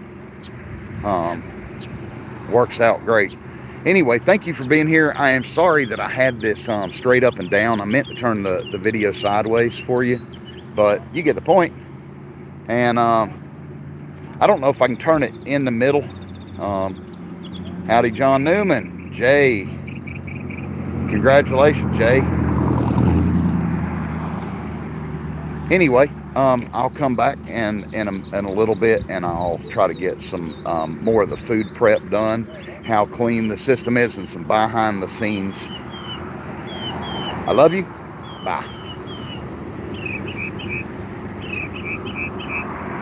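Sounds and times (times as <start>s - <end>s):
high bird chirps: 0.0s - 12.0s, 13.6s - 13.9s, 15.3s - 21.1s, 22.8s - 42.8s
road traffic rumble: 0.0s - 43.0s
vehicle engine humming: 0.0s - 43.0s.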